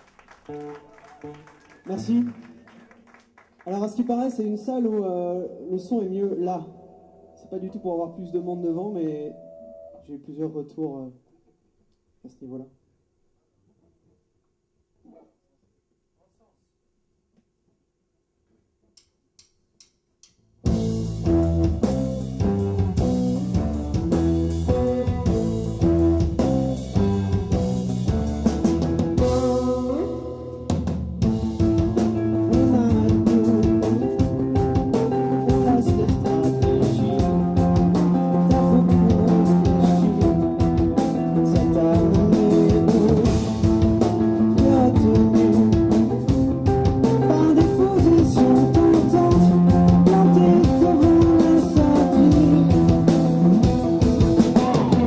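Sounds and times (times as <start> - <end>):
live band playing: 0.0 - 3.2, 20.7 - 55.0.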